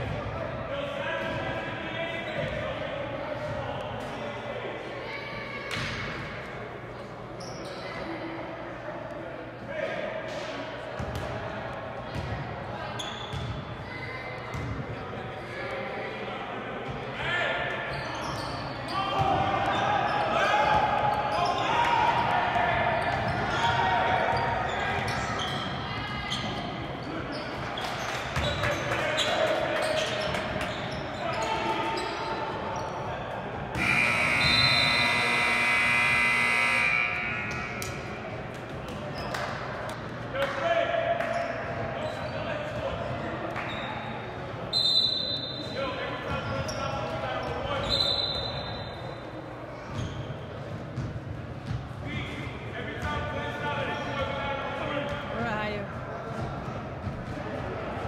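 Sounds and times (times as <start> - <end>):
scoreboard horn blast: 33.8 - 37.8
players and spectators shouting: 33.8 - 38.1.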